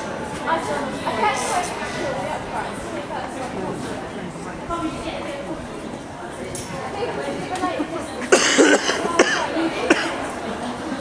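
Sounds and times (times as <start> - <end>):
person coughing: 8.3 - 10.2.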